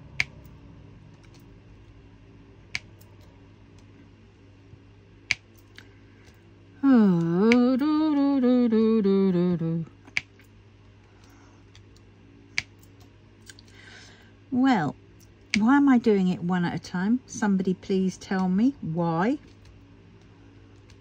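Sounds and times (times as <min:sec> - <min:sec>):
woman wordless wavering sound: 0:06.8 - 0:10.0.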